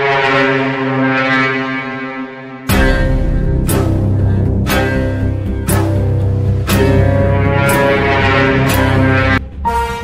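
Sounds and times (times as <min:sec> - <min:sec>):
low horn-like note: 0:06.7 - 0:10.0.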